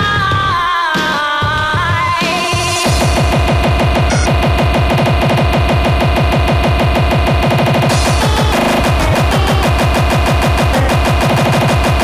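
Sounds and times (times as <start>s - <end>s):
fast electronic kick drums: 0.0s - 12.0s
steady synth tones: 3.0s - 12.0s.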